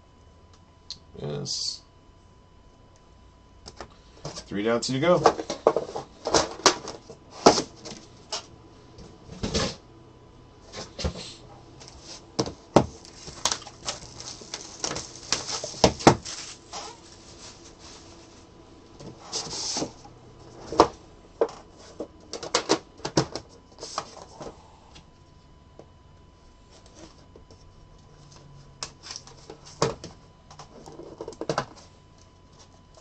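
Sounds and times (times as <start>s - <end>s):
card boxes clicking and knocking: 5.1s - 8.4s, 12.4s - 16.3s, 20.5s - 24.4s, 29.3s - 31.8s.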